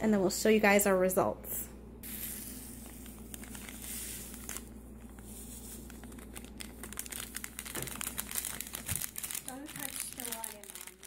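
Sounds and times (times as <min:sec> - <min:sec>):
rustling and crinkling handling noise: 0:02.6 - 0:11.0.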